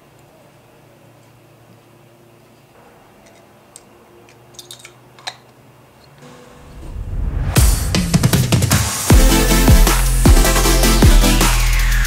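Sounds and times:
small parts clicking: 0:03.2 - 0:06.2.

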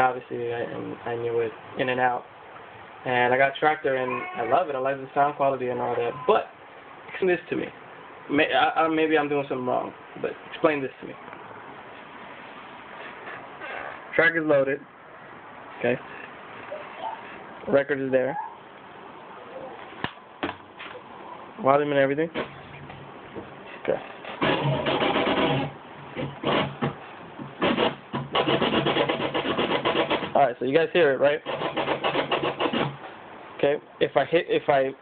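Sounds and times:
low background hiss: 0:00.0 - 0:24.9, 0:30.3 - 0:31.8, 0:32.9 - 0:35.0
record scratching on turntable: 0:24.3 - 0:27.0, 0:27.6 - 0:30.4.

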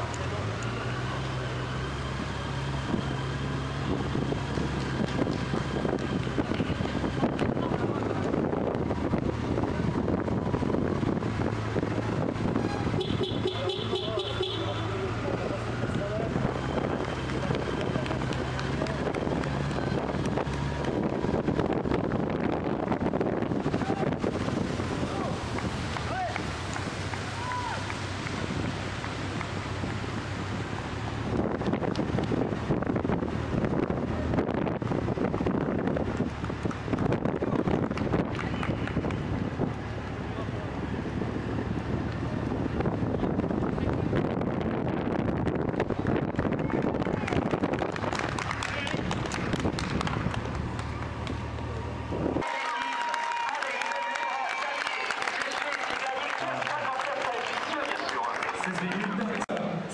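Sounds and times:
motorcycle engines running: 0:00.0 - 0:52.4
wind rushing over microphone: 0:03.7 - 0:13.1, 0:15.2 - 0:52.5.

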